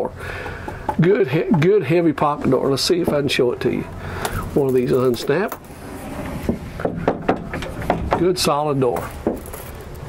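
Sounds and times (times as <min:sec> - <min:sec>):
irregular knocks and clicks: 0:00.4 - 0:01.7, 0:06.5 - 0:08.3
wooden door sliding: 0:05.6 - 0:08.2.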